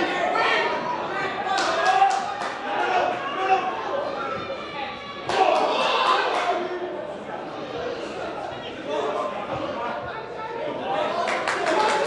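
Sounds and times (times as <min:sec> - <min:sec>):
players shouting in stadium: 0:00.0 - 0:06.6.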